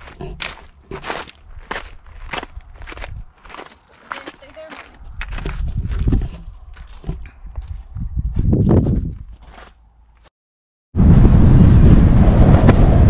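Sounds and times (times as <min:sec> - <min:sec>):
footsteps on gravel: 0:00.0 - 0:10.3
low rumble: 0:11.0 - 0:13.0.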